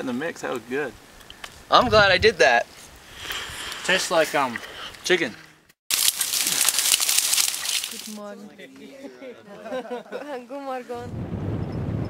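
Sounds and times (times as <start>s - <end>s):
twigs and leaves crackling: 5.9s - 8.3s.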